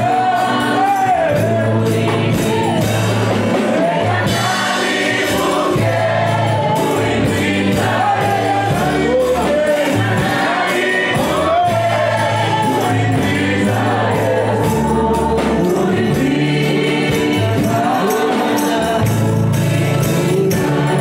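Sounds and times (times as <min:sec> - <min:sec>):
bass line: 0:00.0 - 0:21.0
drums beat: 0:00.0 - 0:21.0
gospel group singing: 0:00.0 - 0:21.0
live band: 0:00.0 - 0:21.0.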